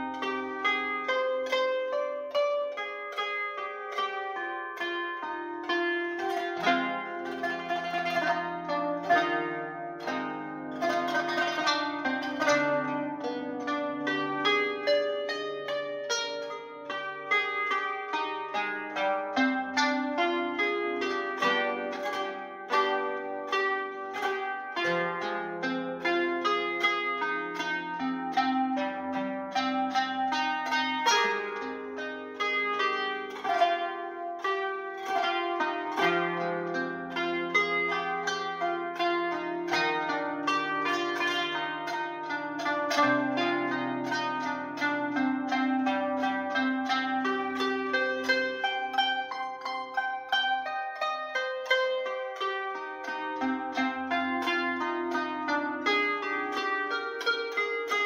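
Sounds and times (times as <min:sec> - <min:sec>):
plucked zither melody: 0:00.0 - 0:58.0.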